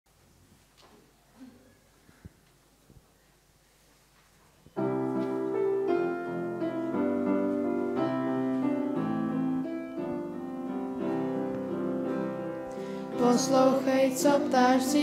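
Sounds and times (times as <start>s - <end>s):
piano chords and melody: 4.8s - 15.0s.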